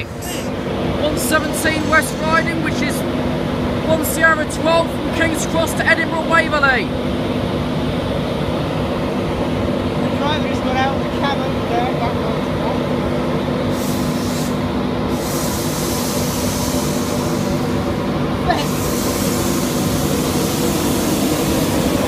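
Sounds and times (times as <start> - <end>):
electric train rumble and hum: 0.0 - 22.0
hiss: 1.3 - 3.0, 13.7 - 22.0.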